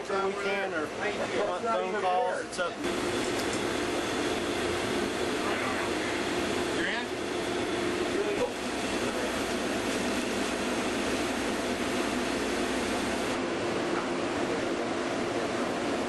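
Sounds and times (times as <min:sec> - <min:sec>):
ventilation air rushing: 0:02.7 - 0:16.0.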